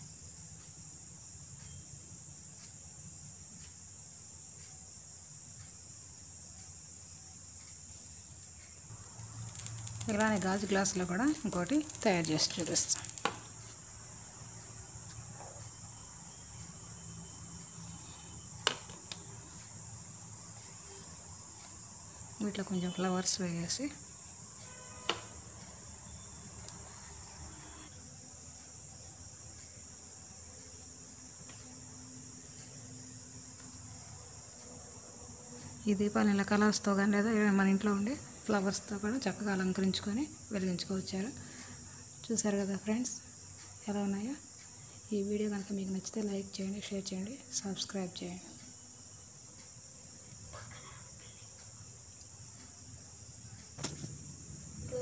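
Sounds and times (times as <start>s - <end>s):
crickets chirring: 0.0s - 55.0s
woman speaking: 10.0s - 13.3s, 22.4s - 24.0s, 43.8s - 44.4s, 45.1s - 48.6s.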